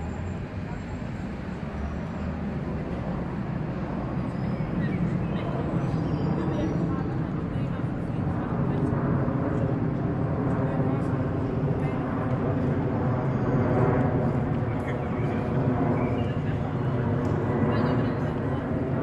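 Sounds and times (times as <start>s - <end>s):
jet airliner flying overhead: 0.0s - 19.0s.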